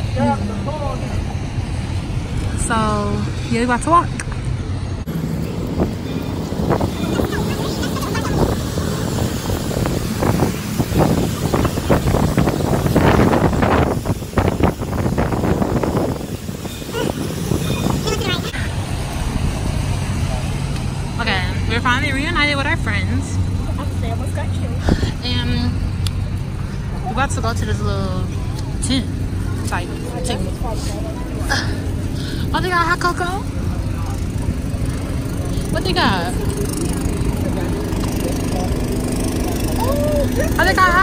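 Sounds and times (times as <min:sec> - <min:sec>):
low engine hum: 0:00.0 - 0:41.0
wind buffeting microphone: 0:04.9 - 0:20.1
voices: 0:05.1 - 0:18.8, 0:19.6 - 0:41.0
tyre hiss on wet road: 0:07.6 - 0:20.7.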